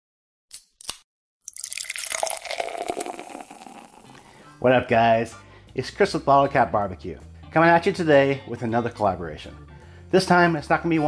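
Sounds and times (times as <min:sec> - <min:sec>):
liquid pouring into container: 0:01.4 - 0:04.3.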